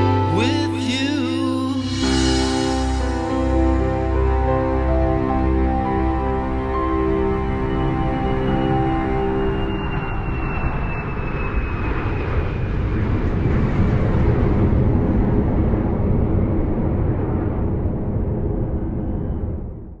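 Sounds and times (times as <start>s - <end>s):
rushing engine noise: 0.0s - 19.9s
faint whine falling in pitch: 0.0s - 20.0s.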